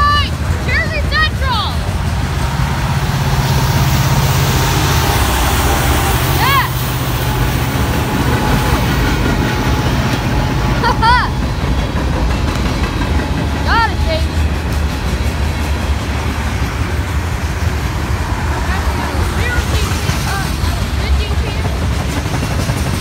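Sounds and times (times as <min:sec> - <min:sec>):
freight train wheels rumbling on rails: 0:00.0 - 0:23.0.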